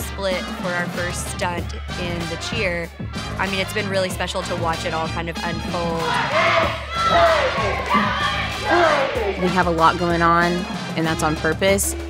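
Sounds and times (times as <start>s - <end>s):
background music: 0.0s - 12.0s
cheerleaders yelling in unison: 5.7s - 9.8s.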